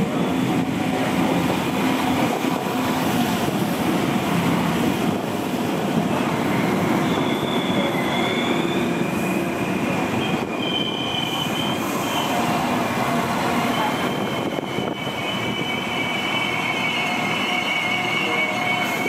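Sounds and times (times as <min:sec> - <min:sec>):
train rumbling past: 0:00.0 - 0:19.0
train wheels squealing: 0:06.2 - 0:12.6, 0:13.4 - 0:19.0.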